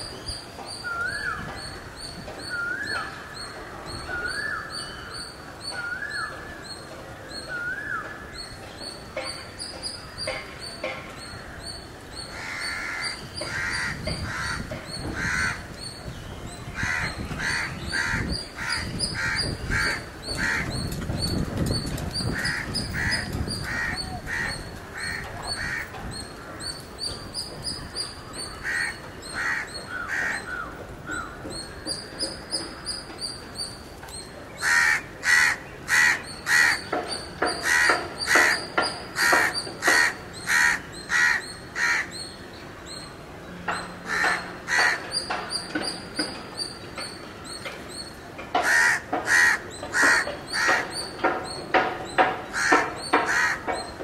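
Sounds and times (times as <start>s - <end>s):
birds calling: 0.0s - 54.0s.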